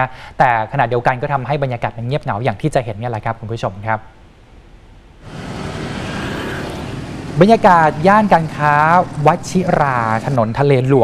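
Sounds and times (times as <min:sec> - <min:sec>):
passing traffic road noise: 0:05.2 - 0:10.4.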